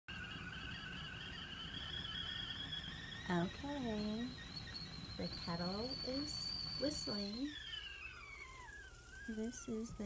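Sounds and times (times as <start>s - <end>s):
kettle whistling: 0.1s - 10.0s.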